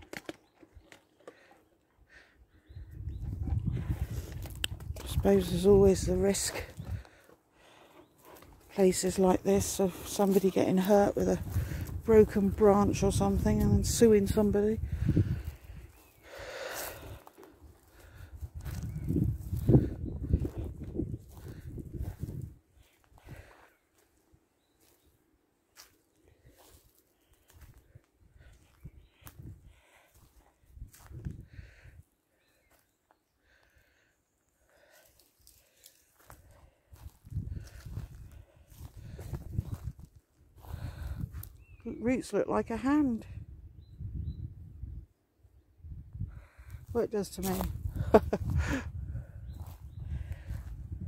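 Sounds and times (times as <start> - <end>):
footsteps on dry leaves: 4.0 - 24.1, 25.7 - 27.9, 34.8 - 41.6, 47.2 - 48.0
twigs cracking: 34.8 - 37.9.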